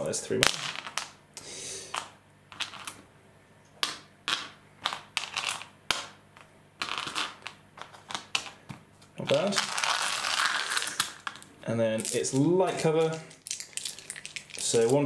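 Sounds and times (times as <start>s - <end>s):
dice clicking together: 3.8s - 8.6s.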